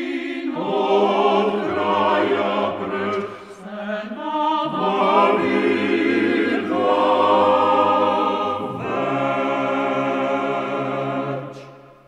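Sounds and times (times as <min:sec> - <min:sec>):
men singing a cappella: 0:00.0 - 0:11.8.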